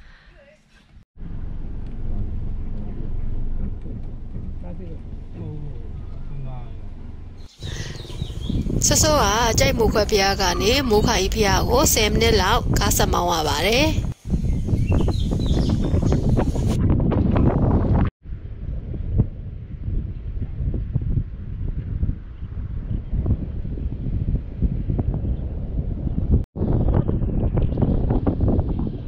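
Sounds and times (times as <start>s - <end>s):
wind buffeting microphone: 1.2s - 29.0s.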